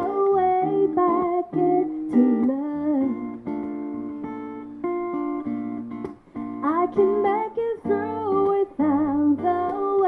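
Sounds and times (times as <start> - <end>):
woman singing into a microphone: 0.0 - 3.7, 6.6 - 10.0
acoustic guitar: 0.0 - 10.0.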